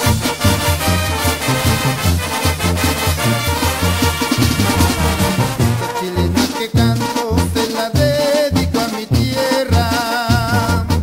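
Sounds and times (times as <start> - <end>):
brass band playing: 0.0 - 11.0.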